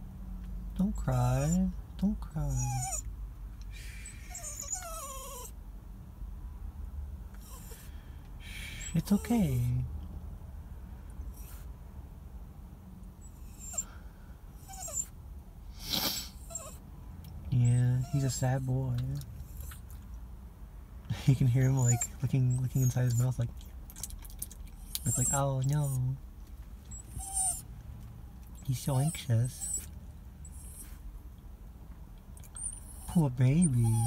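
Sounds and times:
small dog whimpering: 1.2 - 1.7, 2.4 - 3.1, 3.8 - 5.6, 7.4 - 7.9, 8.8 - 9.8, 13.2 - 14.0, 14.6 - 15.1, 16.3 - 16.8, 17.6 - 20.0, 21.4 - 26.2, 26.9 - 27.7, 28.6 - 31.0, 32.4 - 34.0
breathy puff: 7.8 - 8.9, 15.7 - 16.5.

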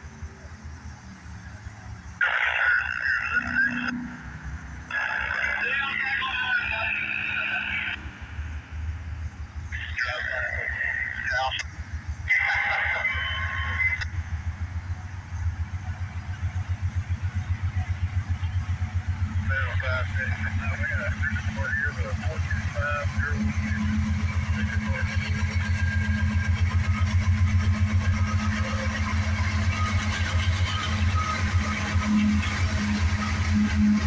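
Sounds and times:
train rumbling: 0.0 - 34.0.

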